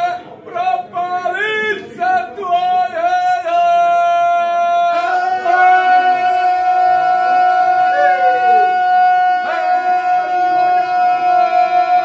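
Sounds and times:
men singing unaccompanied: 2.8s - 12.0s.

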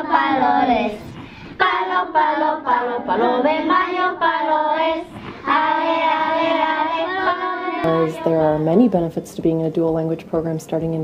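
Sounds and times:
children singing together: 0.0s - 8.4s.

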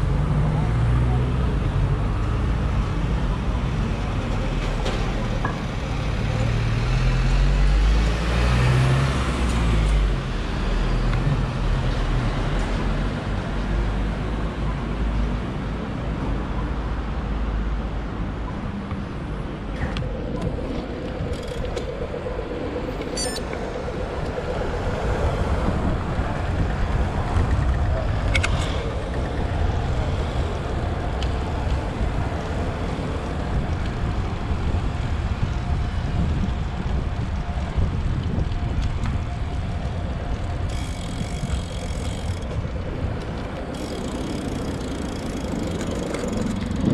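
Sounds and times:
road traffic: 0.0s - 46.9s
wind rushing over microphone: 18.2s - 46.9s.

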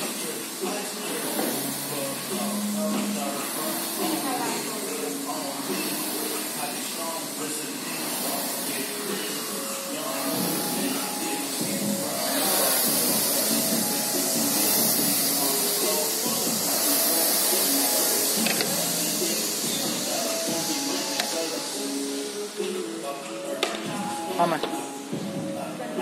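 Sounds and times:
chatter: 0.0s - 26.0s
gym background music: 0.0s - 26.0s.

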